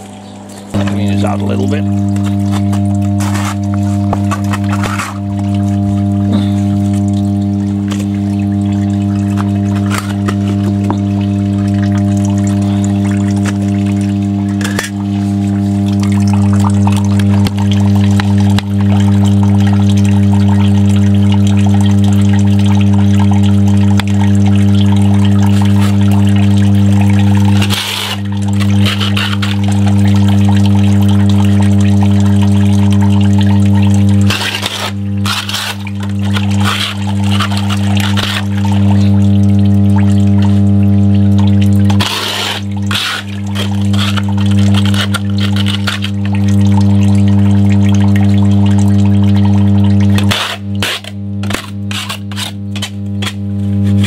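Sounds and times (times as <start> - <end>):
loud electrical hum: 0.0 - 54.0
scraper scraping drain grate: 0.8 - 5.3, 9.3 - 10.7, 25.4 - 26.1, 27.2 - 29.9, 34.2 - 39.0, 41.9 - 46.3, 50.2 - 54.0.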